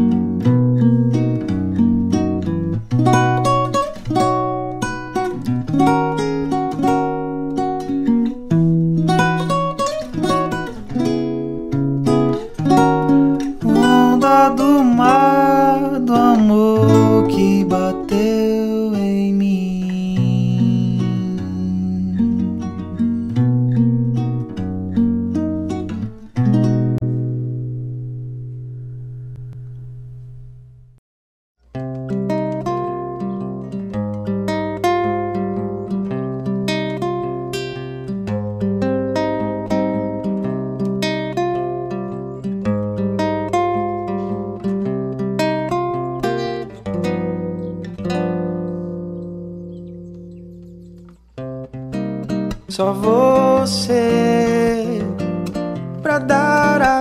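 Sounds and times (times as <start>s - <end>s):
acoustic guitar music: 0.0s - 31.0s, 31.6s - 57.0s.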